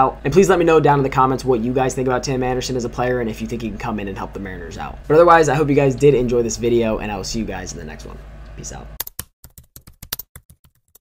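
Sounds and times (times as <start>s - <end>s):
keyboard typing clicks: 9.0s - 11.0s.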